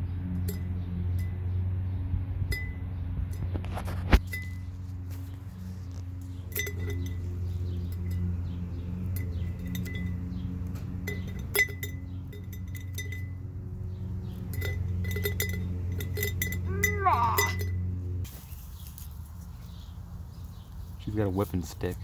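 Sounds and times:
steady low hum: 0:00.0 - 0:21.2
twigs clinking against glass jar: 0:03.3 - 0:19.6.

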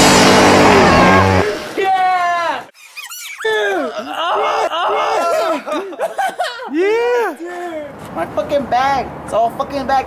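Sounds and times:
sharp squeaks: 0:02.7 - 0:03.6
person's high-pitched cries: 0:02.9 - 0:05.9.

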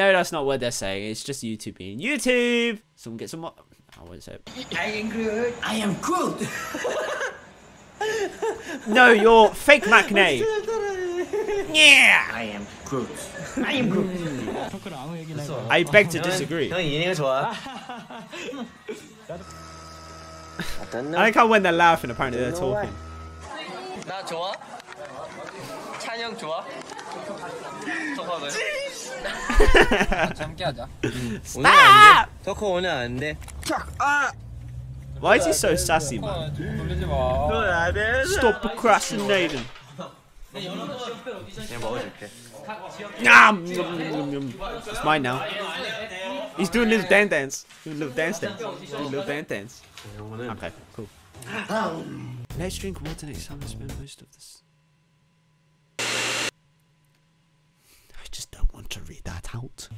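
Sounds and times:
young men chattering: 0:04.5 - 0:19.6, 0:20.5 - 0:52.9
burst of static white noise: 0:56.0 - 0:56.5.

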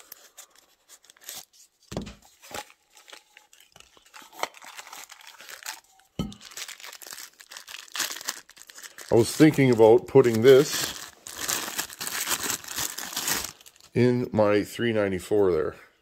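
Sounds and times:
cardboard and paper rustling: 0:00.0 - 0:13.9
plastic bag crinkling: 0:02.3 - 0:14.0.

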